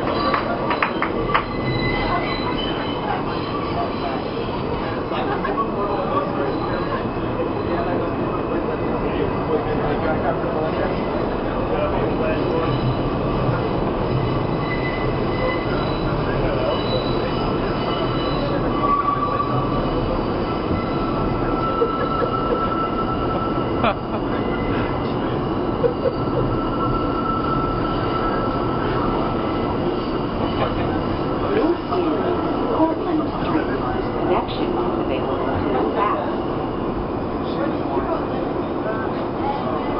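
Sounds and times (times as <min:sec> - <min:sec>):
high wheel squeal: 0:00.0 - 0:04.7, 0:12.5 - 0:32.8
subway car rumble and rattle: 0:00.0 - 0:39.9.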